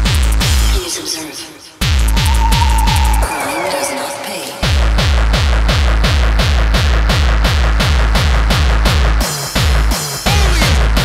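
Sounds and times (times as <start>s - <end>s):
pounding distorted kick drum: 1.8s - 3.5s, 4.6s - 11.0s
high held synth note: 2.0s - 6.0s.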